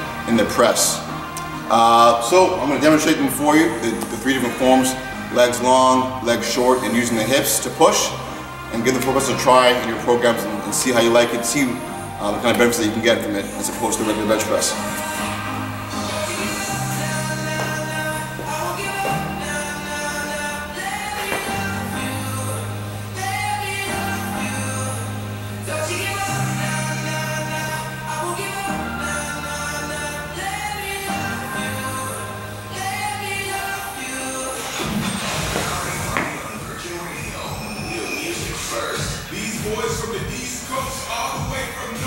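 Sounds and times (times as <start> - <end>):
music with singing: 0.0 - 42.0.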